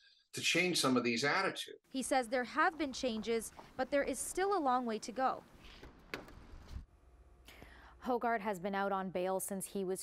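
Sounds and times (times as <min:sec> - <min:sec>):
person breathing: 0:07.4 - 0:08.0.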